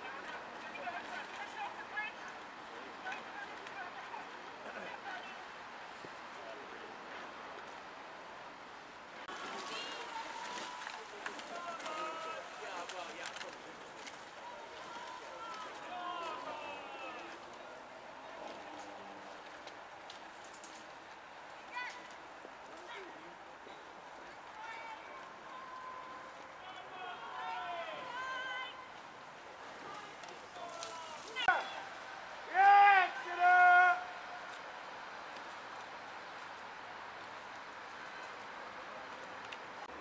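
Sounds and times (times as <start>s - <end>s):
background chatter: 0.0s - 40.0s
outdoor hubbub: 0.0s - 40.0s
person shouting: 32.5s - 34.1s.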